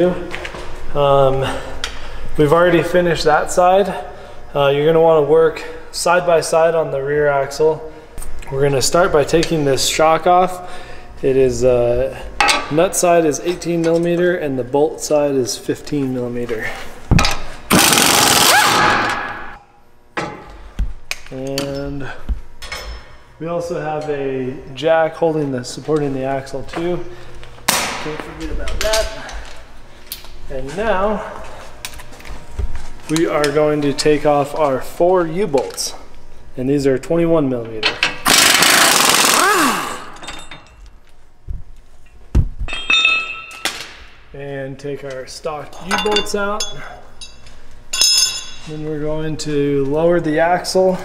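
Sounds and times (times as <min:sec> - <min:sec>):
pneumatic impact wrench hammering: 0:17.2 - 0:19.6, 0:38.0 - 0:40.6
metal part ringing: 0:42.7 - 0:43.7, 0:45.9 - 0:48.7
steel hardware clinking: 0:42.7 - 0:43.9, 0:45.8 - 0:48.7.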